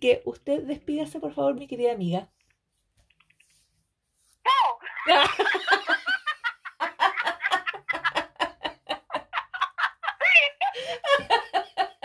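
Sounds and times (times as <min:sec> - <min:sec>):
woman laughing hard: 0:04.5 - 0:12.0.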